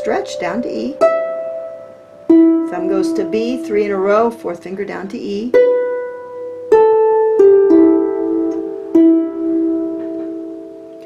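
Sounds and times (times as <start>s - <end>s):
harp plucked notes: 0.0s - 11.0s.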